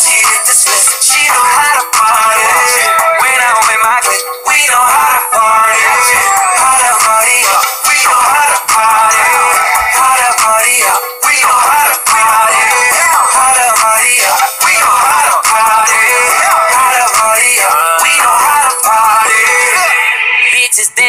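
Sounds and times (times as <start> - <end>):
music with autotuned male singing: 0.0 - 21.0.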